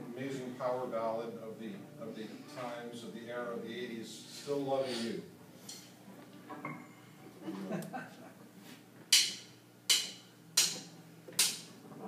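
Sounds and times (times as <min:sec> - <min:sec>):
drumstick count-in clicks: 0:09.1 - 0:11.6.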